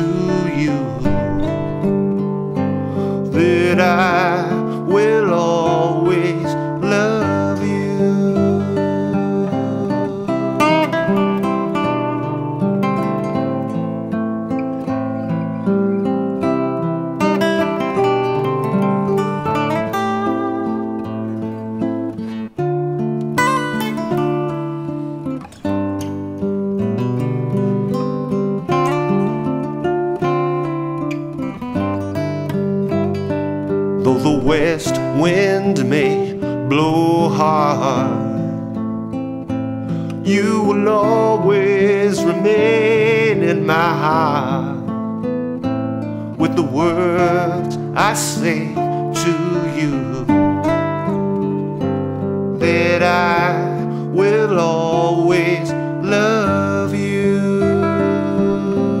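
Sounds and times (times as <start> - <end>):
plucked lead guitar line: 0.0 - 59.0
strummed acoustic guitar chords: 0.0 - 59.0.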